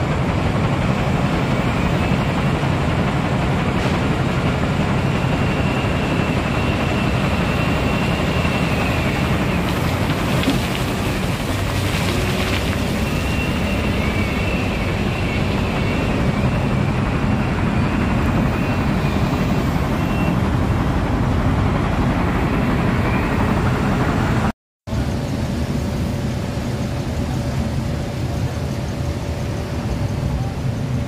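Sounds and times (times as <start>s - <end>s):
heavy machinery rumble: 0.0s - 31.0s.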